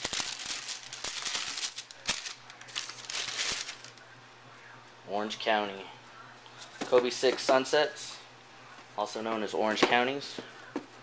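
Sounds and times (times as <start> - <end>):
tissue paper rustling and crackling: 0.0 - 4.0.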